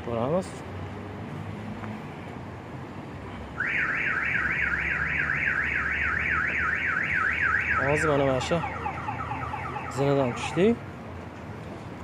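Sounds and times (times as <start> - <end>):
low street noise: 0.0 - 12.0
car alarm siren warbling: 3.6 - 10.7.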